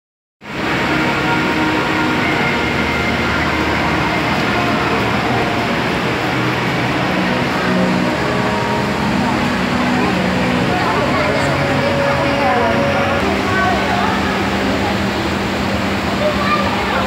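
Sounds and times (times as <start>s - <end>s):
crowd noise: 0.5s - 17.0s
machinery hum: 0.5s - 17.0s
faint steady tones: 0.6s - 17.0s.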